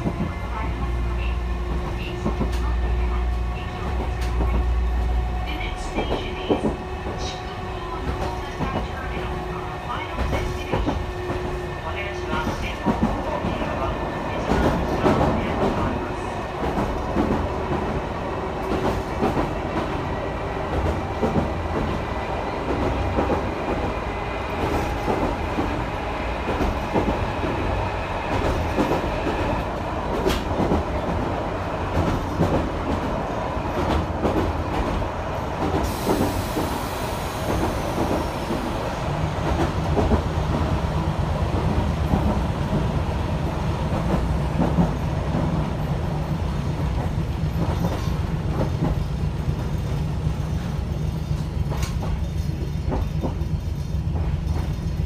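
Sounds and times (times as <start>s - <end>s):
wheel and rail running noise: 41.4s - 55.0s
clicks from the track: 51.6s - 52.2s.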